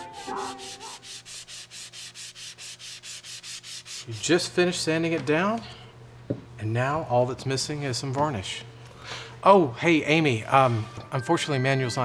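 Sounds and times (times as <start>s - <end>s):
sandpaper rubbing on wood: 0.0s - 4.4s.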